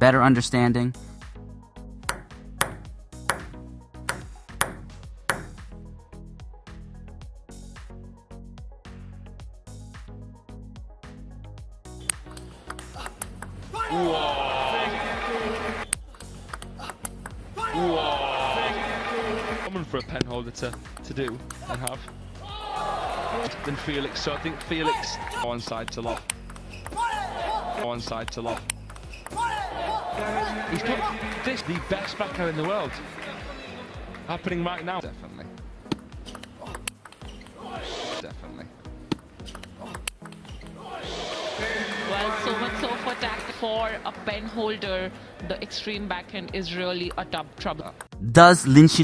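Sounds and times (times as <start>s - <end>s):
music: 0.0s - 49.0s
background music with beat: 1.0s - 19.7s
table tennis ball clicks: 2.1s - 5.6s, 12.0s - 13.6s, 15.9s - 17.4s, 20.2s - 22.2s, 25.8s - 27.0s, 28.2s - 29.4s, 35.9s - 37.6s, 39.1s - 40.6s
person speaking: 48.2s - 49.0s.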